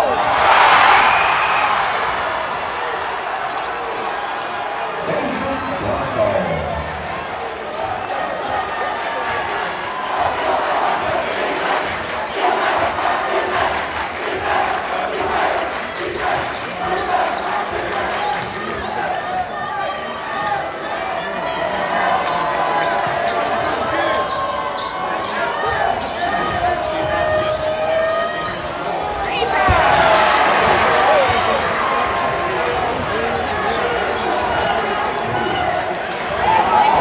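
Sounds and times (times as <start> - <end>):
crowd shouting and chatter: 0.0 - 37.0.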